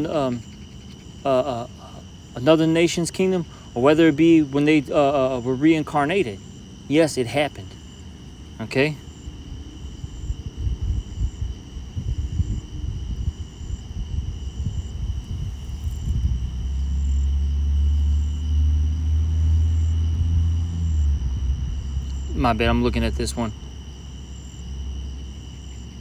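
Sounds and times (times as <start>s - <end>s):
crickets chirping: 0.0s - 26.0s
low engine-like rumble: 1.3s - 26.0s.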